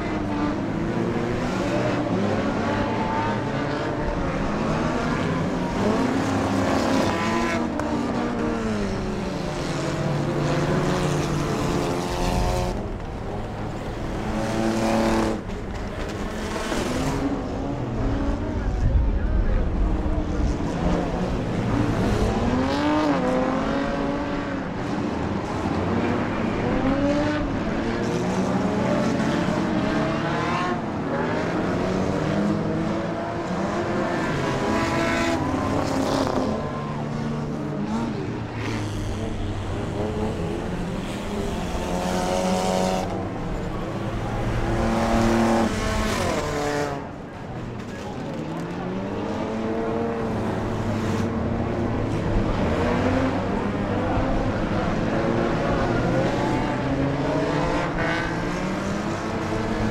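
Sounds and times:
race car engines passing: 0.0s - 59.9s.

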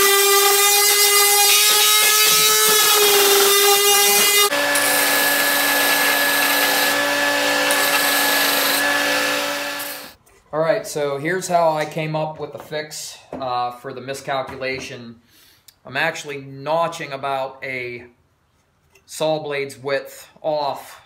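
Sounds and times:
power tool motor whine: 0.0s - 10.2s.

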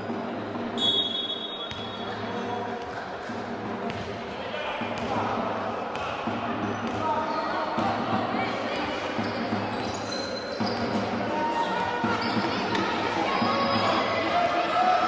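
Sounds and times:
basketball bouncing on wooden court: 3.9s - 4.2s.

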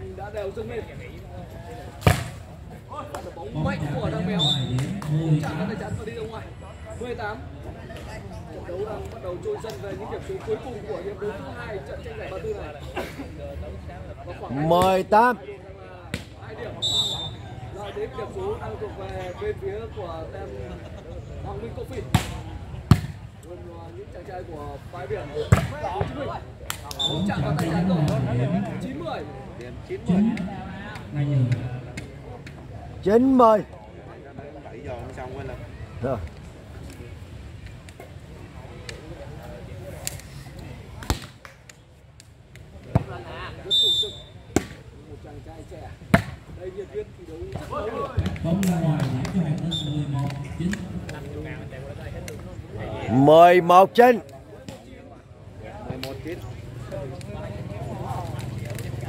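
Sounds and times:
voices: 0.0s - 59.0s.

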